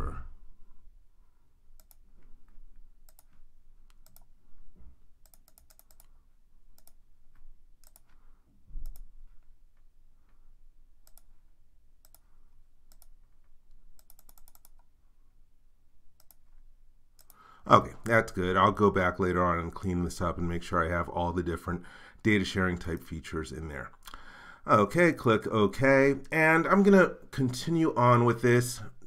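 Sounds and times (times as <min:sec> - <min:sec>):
computer mouse clicking: 0:01.8 - 0:04.3, 0:05.2 - 0:10.4, 0:11.0 - 0:11.4, 0:12.0 - 0:12.3, 0:12.9 - 0:14.9, 0:16.2 - 0:16.6, 0:17.2 - 0:17.4.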